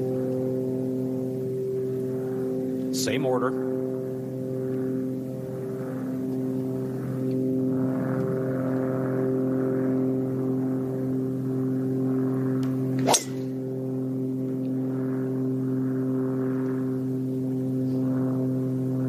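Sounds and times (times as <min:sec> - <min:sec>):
steady low hum: 0:00.0 - 0:19.0
golf driver striking ball: 0:13.0 - 0:13.6.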